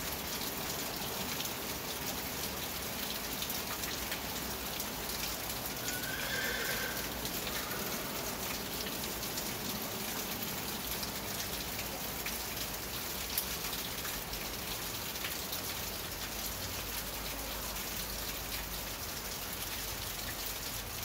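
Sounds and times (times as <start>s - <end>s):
rain on a roof: 0.0s - 21.0s
horse whinnying: 5.8s - 7.2s.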